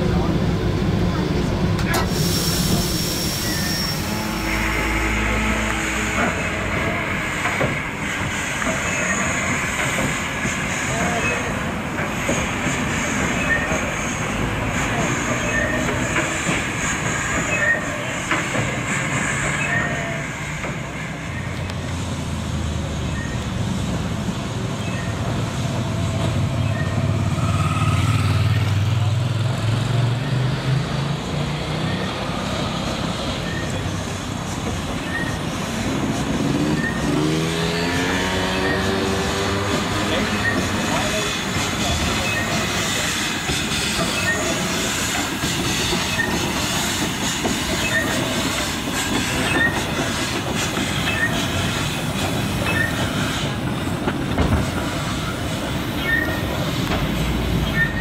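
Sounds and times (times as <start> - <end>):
rack railway train whine: 0.0 - 58.0.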